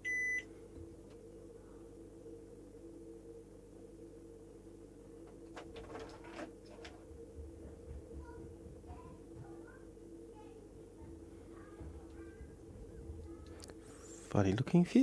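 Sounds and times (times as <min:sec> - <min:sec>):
multimeter beep: 0:00.0 - 0:00.5
low background hum: 0:00.0 - 0:15.0.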